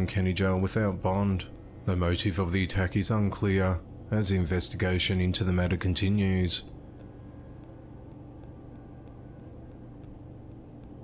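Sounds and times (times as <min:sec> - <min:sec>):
low hum with hiss: 0:00.0 - 0:11.0.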